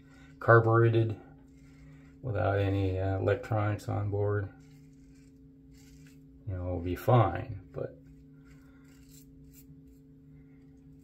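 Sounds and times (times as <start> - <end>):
razor scraping stubble: 0.0 - 11.0
steady low hum: 0.0 - 11.0.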